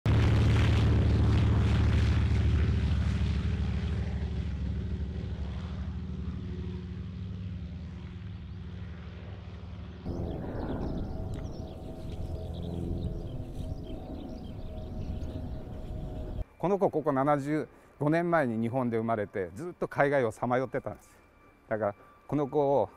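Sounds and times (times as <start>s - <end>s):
propeller plane engine at full power: 0.1s - 16.4s
plane droning in flight: 0.1s - 16.5s, 20.3s - 22.9s.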